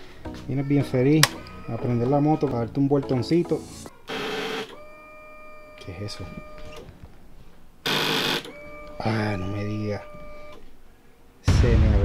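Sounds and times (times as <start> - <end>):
motorcycle starter whine: 4.1 - 7.1, 7.8 - 10.7.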